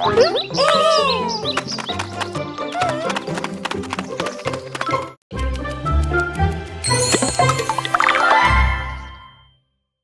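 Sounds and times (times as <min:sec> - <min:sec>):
cartoon music with tapping percussion: 0:00.0 - 0:08.9.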